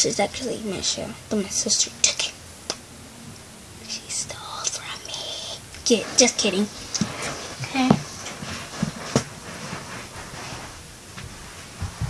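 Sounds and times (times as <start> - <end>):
girl whispering: 3.8 - 8.0.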